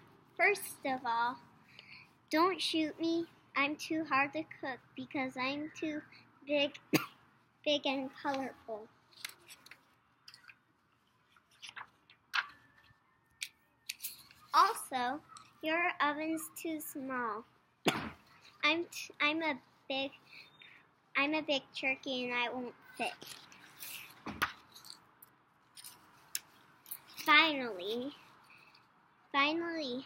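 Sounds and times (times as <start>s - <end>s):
paper rustling and shuffling: 9.1s - 10.4s, 11.2s - 12.7s.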